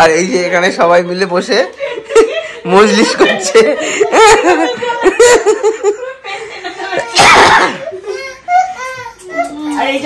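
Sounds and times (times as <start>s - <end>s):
women laughing hard: 1.8s - 8.3s.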